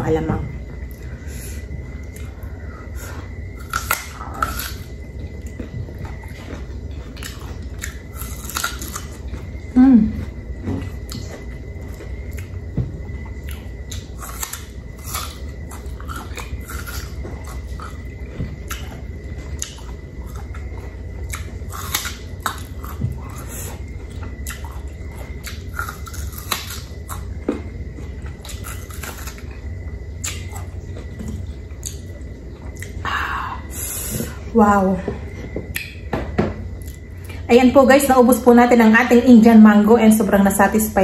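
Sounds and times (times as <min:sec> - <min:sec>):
steady low hum: 0:00.0 - 0:41.0
person biting and chewing: 0:03.5 - 0:09.4, 0:13.4 - 0:27.3, 0:28.3 - 0:29.6, 0:30.2 - 0:31.1.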